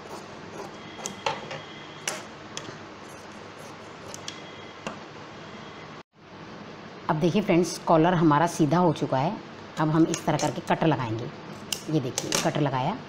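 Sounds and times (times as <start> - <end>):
shears snipping cloth: 0.0 - 1.2, 3.1 - 4.3.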